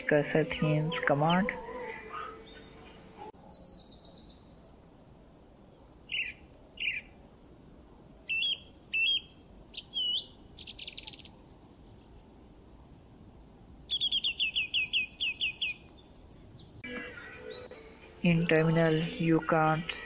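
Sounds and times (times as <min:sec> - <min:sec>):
birdsong chirps and whistles: 0:00.6 - 0:04.7, 0:06.1 - 0:07.1, 0:08.3 - 0:12.3, 0:13.9 - 0:20.0.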